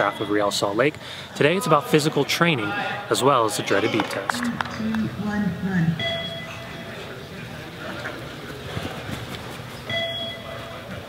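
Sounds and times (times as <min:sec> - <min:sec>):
running footsteps on artificial turf: 0:07.8 - 0:11.0.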